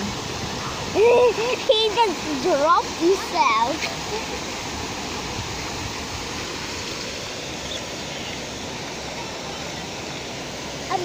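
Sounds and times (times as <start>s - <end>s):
fountain water spraying and splashing: 0.0s - 11.0s.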